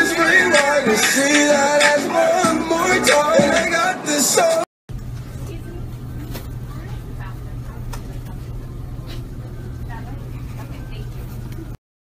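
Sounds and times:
faint indistinct voices: 5.3 - 11.8.

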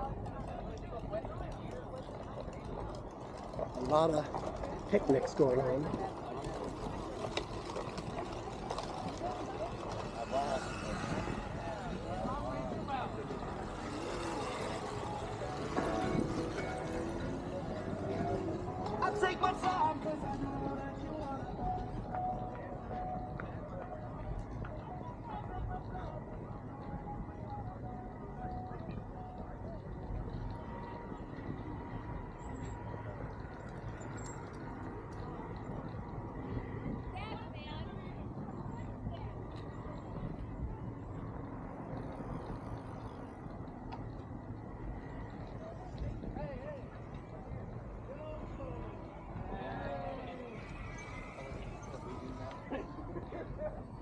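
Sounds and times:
chatter of passers-by: 0.0 - 54.0
wheelchair rolling on pavement: 0.0 - 54.0
wind on microphone: 5.8 - 54.0.

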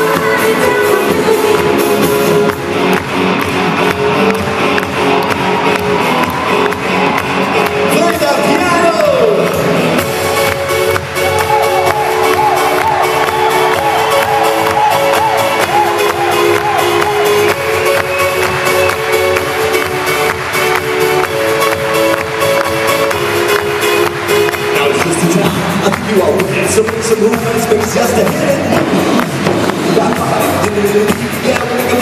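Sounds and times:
held keyboard chords: 0.0 - 32.0
steady dance beat: 0.0 - 32.0.

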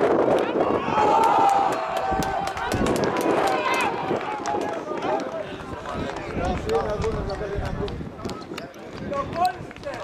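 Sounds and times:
voices shouting and cheering: 0.0 - 10.0.

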